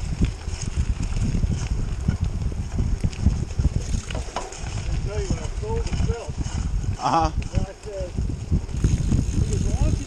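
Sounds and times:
bike rolling over rough trail: 0.0s - 10.0s
wind on microphone: 0.0s - 10.0s.

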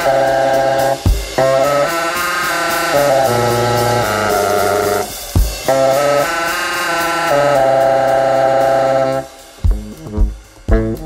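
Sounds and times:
baritone saxophone held notes: 0.0s - 11.0s.

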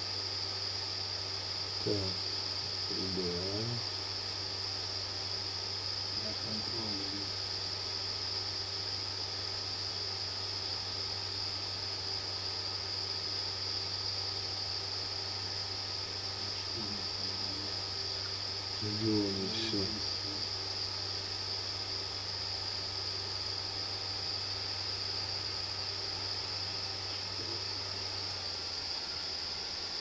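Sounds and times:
high-pitched hiss: 0.0s - 30.0s
low electrical hum: 0.0s - 30.0s
faint muttered words: 6.2s - 7.4s, 16.4s - 17.9s, 18.8s - 20.5s.

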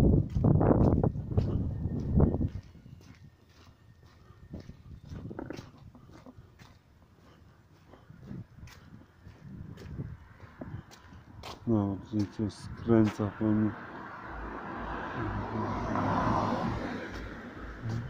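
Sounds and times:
footsteps on pavement: 0.0s - 18.0s.

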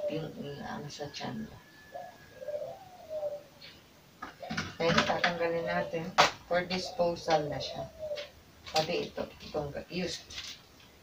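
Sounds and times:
dove cooing: 0.0s - 9.7s.

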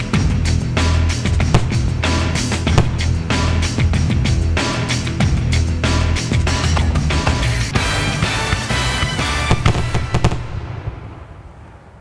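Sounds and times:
fireworks bangs and crackles: 0.0s - 3.8s, 7.3s - 12.0s
music: 0.0s - 10.6s.

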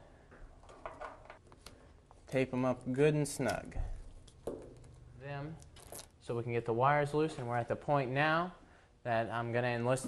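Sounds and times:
cord being tied onto wires: 5.6s - 6.2s.

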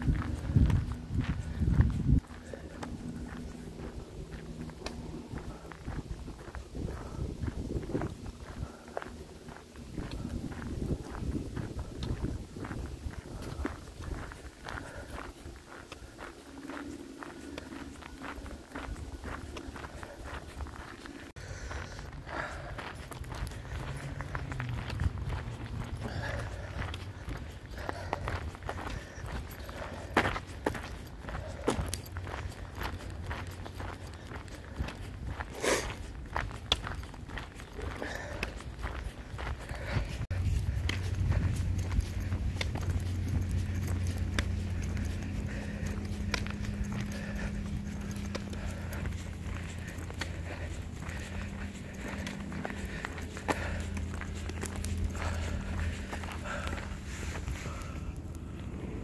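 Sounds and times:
footsteps on gravel: 0.0s - 59.0s
low steady hum: 0.0s - 59.0s.

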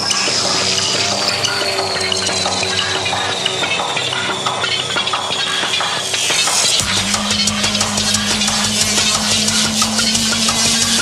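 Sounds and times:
drum and bass music: 0.0s - 11.0s.

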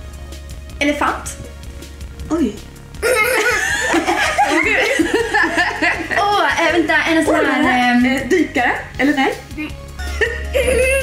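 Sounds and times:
women and girl laughing: 3.0s - 6.3s, 10.0s - 11.0s.

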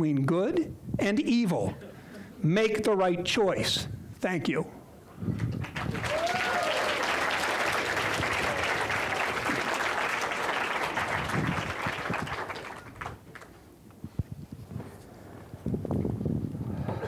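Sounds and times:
audience applauding: 5.4s - 13.6s.

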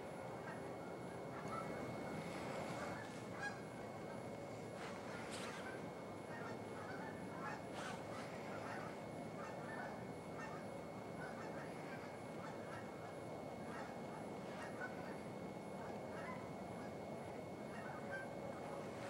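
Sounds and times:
distant geese honking: 0.1s - 19.0s.

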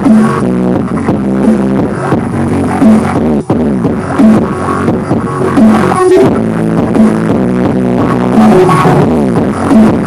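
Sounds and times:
bass-heavy music over loudspeaker: 0.0s - 10.0s.

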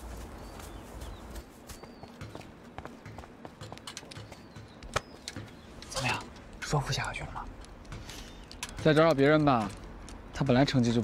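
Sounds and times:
footsteps on grass field: 0.0s - 5.8s.

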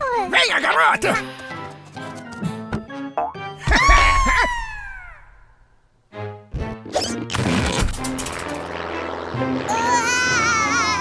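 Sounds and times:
cartoon background music: 0.0s - 5.2s, 6.1s - 11.0s.

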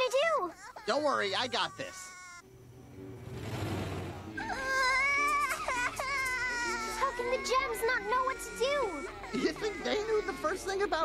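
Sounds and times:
baby wailing cry: 0.0s - 2.4s, 4.4s - 11.0s.

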